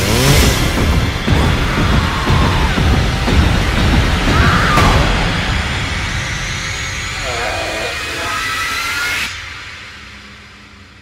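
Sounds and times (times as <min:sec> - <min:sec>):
dense rush of noise: 0:00.0 - 0:11.0.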